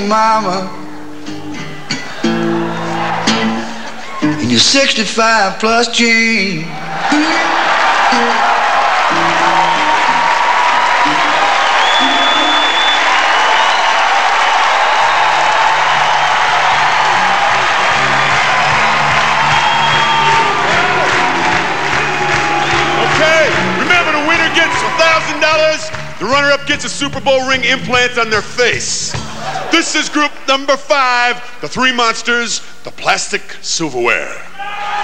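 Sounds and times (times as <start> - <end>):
audience applauding and cheering: 1.6 - 4.4, 6.6 - 31.6
band playing: 7.0 - 31.0.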